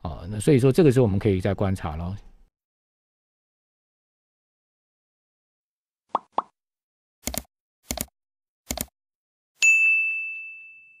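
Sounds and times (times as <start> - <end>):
notification bell ding: 9.6 - 11.0.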